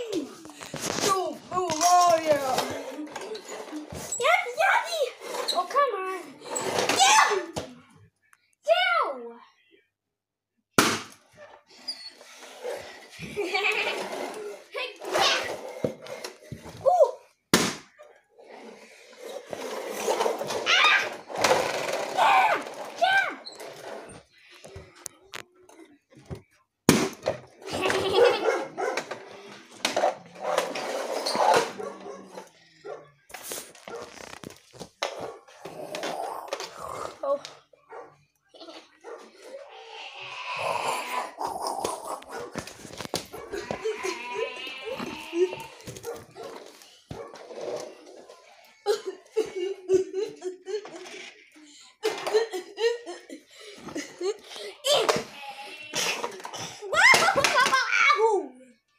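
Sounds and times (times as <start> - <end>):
person making play noises: 39.5 - 42.5.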